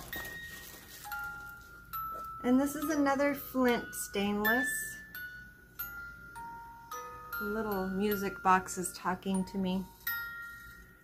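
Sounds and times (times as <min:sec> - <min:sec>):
music box notes: 0:00.0 - 0:11.0.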